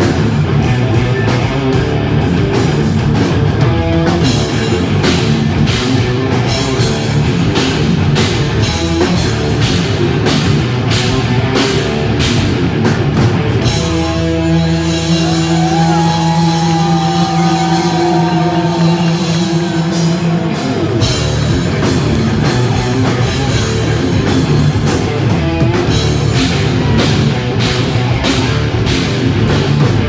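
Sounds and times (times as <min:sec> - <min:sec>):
hard rock band playing: 0:00.0 - 0:30.0.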